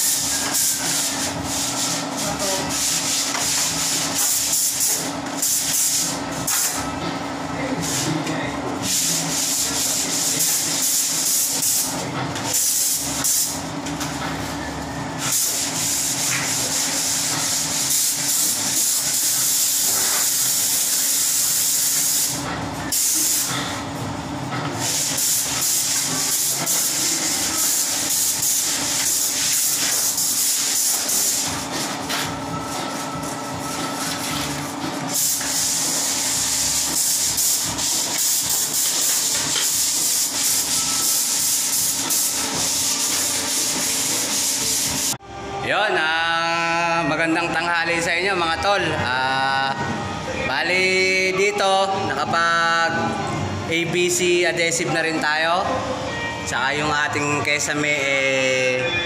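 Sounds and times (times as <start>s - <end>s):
spray gun hissing: 15.2s - 23.5s, 24.8s - 31.8s, 35.1s - 45.2s.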